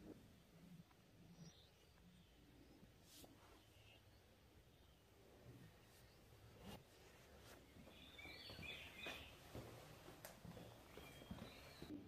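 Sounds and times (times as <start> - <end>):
faint bird chirping: 0.0 - 12.0.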